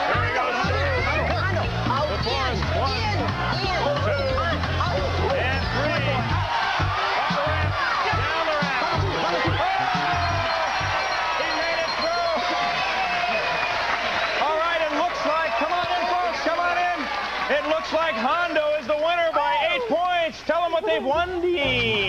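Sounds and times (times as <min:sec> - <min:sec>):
upbeat background music: 0:00.0 - 0:19.6
excited voices shouting: 0:00.0 - 0:21.0.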